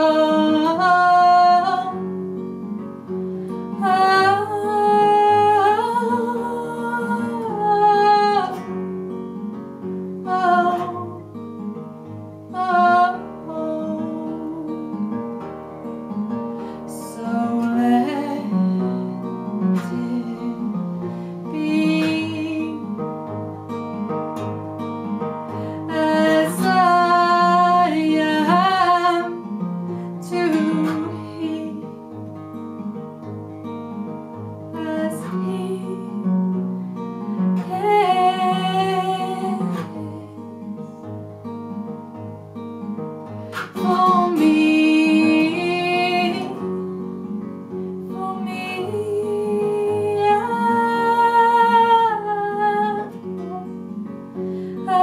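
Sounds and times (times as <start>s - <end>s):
acoustic guitar: 0.0s - 55.0s
woman singing folk song: 0.0s - 55.0s.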